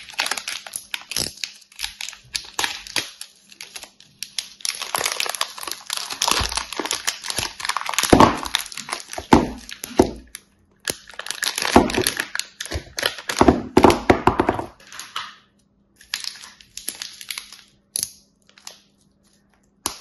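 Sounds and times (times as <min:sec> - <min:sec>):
plastic wrapper crinkling: 0:00.0 - 0:20.0.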